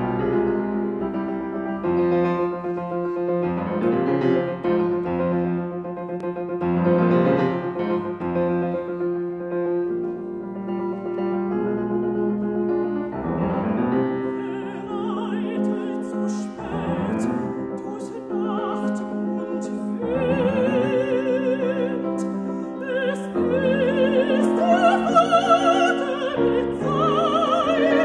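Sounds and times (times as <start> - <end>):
grand piano playing: 0.0 - 28.0
woman singing with vibrato: 14.2 - 28.0.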